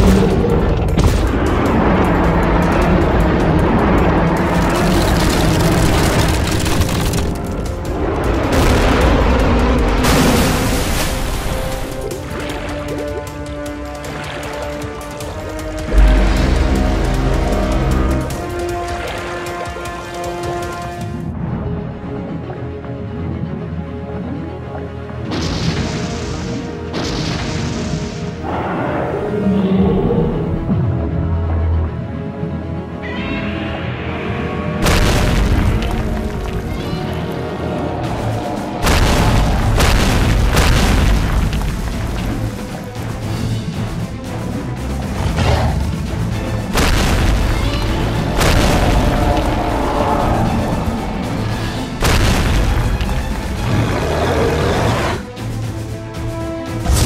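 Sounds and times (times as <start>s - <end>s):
dramatic cartoon music: 0.0s - 57.0s.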